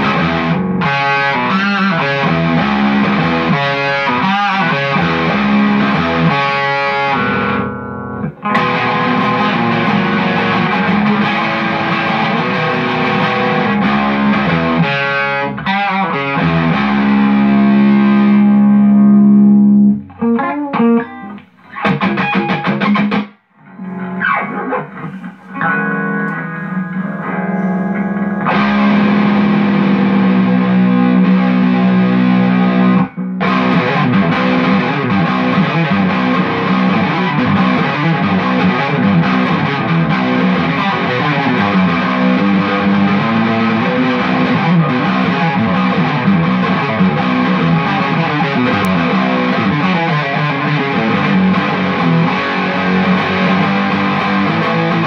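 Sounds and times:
distorted electric guitar: 0.0 - 55.0.

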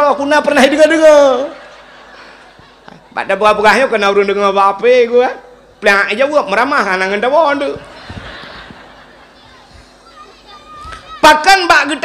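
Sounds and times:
faint audience voices: 1.6 - 3.6, 7.6 - 11.2
child's voice: 9.4 - 11.4.

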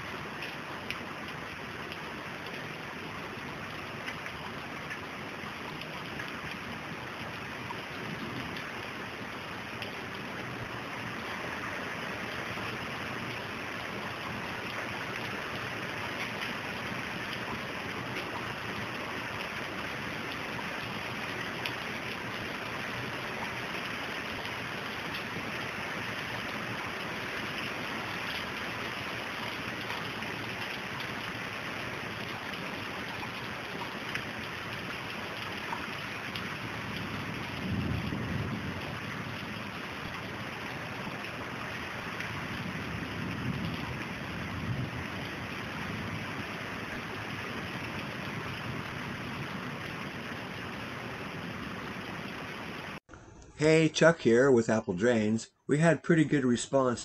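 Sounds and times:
water running across paving: 0.0 - 53.0
heavy rain pouring: 0.0 - 53.1.

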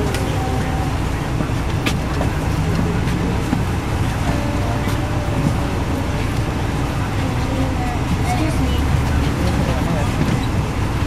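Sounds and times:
bus engine drone: 0.0 - 11.0
road noise: 0.0 - 11.0.

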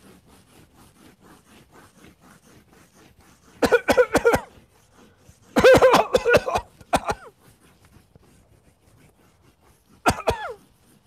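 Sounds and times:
chalk scratching on blackboard: 0.0 - 11.0.

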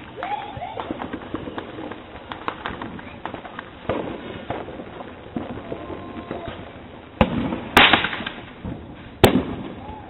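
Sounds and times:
fireworks popping and crackling: 0.0 - 10.0
firework bang: 0.8 - 10.0.

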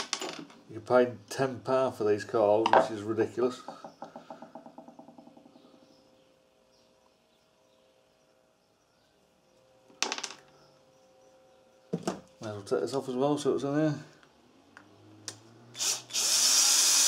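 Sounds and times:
small metal parts clattering: 0.0 - 0.6.

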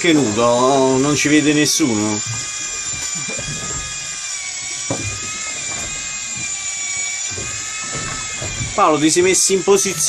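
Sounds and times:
electric fishing reel motor whine: 0.0 - 10.0.

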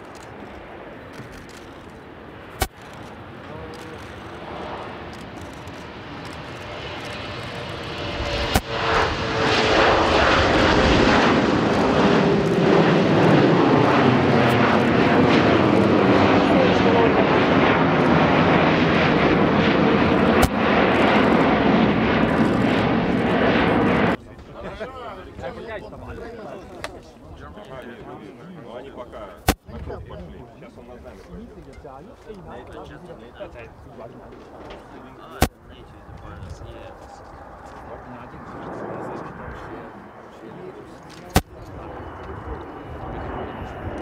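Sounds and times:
jet engines at takeoff thrust: 0.0 - 44.0.

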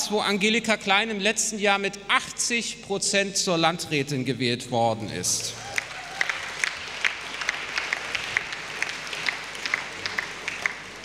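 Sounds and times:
audience applauding: 5.5 - 11.0.

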